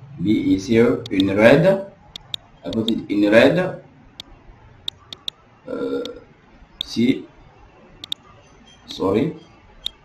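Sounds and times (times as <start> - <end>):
man speaking: 0.0 - 2.0, 2.7 - 3.9, 5.7 - 6.2, 6.8 - 7.4, 8.9 - 9.5
computer mouse clicks: 2.1 - 3.0, 4.2 - 5.4, 8.0 - 8.3.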